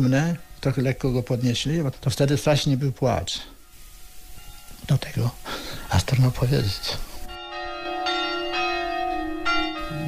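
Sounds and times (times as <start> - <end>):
church bell tolling: 4.4 - 5.4, 6.0 - 10.0.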